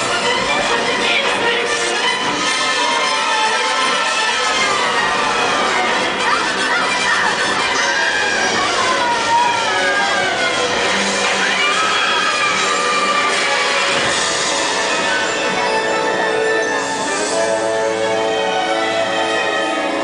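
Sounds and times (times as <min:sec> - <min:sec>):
music over loudspeakers: 0:00.0 - 0:20.0
children shouting and whooping: 0:06.3 - 0:10.7.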